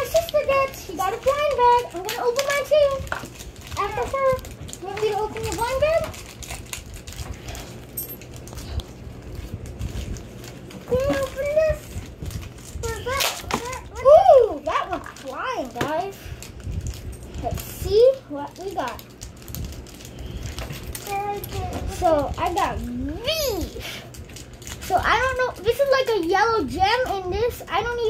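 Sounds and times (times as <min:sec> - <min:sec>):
children's voices: 0:00.0 - 0:03.1, 0:03.7 - 0:06.1, 0:10.8 - 0:12.0, 0:12.8 - 0:16.3, 0:21.0 - 0:24.0, 0:24.8 - 0:28.0
plastic wrappers rustling: 0:00.0 - 0:28.0.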